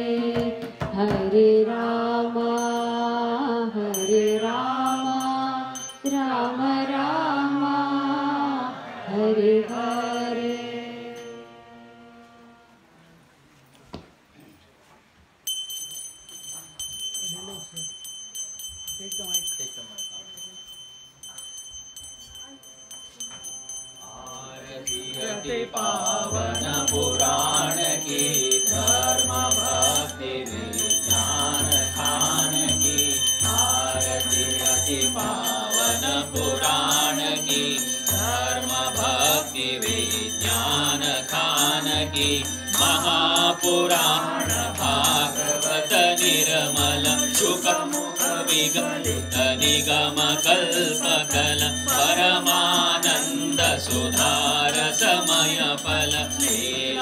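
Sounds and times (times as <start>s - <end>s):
person singing devotional song: 0.0s - 12.7s, 22.4s - 57.0s
small hand bell ringing rapidly: 2.5s - 3.2s, 3.9s - 6.6s, 15.4s - 57.0s
musical accompaniment: 10.7s - 13.2s.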